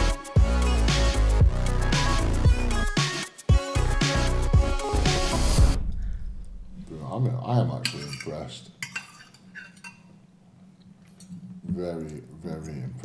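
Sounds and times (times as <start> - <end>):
background music: 0.0 - 7.4
cutlery clinking on plate: 7.8 - 10.1.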